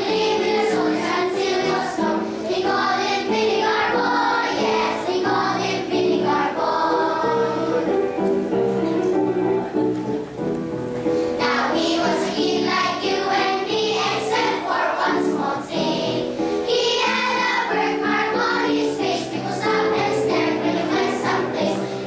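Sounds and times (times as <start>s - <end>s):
children's choir singing: 0.0s - 10.4s, 11.4s - 22.0s
instrumental accompaniment: 0.0s - 22.0s.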